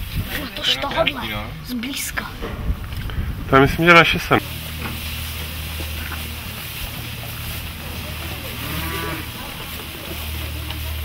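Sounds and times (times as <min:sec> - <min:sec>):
steady low hum: 0:00.6 - 0:11.0
cattle mooing: 0:07.8 - 0:09.9.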